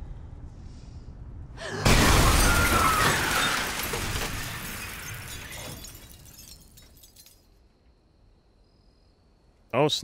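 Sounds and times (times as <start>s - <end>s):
faint clinks of debris: 3.0s - 7.7s.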